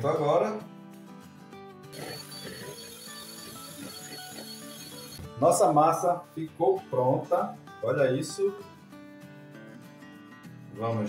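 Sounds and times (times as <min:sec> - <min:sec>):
quiet guitar music: 0:00.0 - 0:11.0
electric hand mixer whining: 0:02.0 - 0:05.2.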